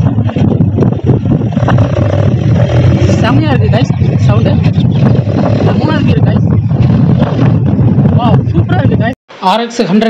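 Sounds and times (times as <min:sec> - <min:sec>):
motorcycle engine rumble: 0:00.0 - 0:09.0.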